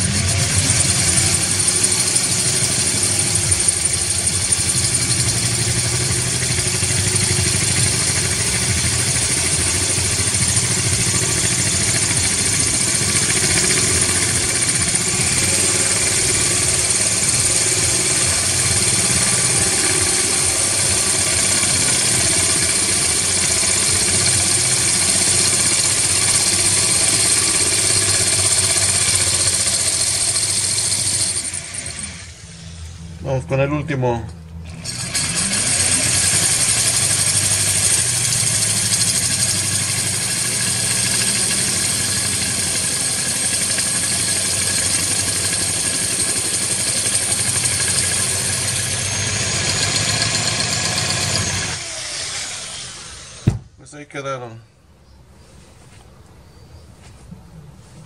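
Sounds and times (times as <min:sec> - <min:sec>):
electric drill grinding glass: 0:00.0 - 0:33.0, 0:34.7 - 0:53.6.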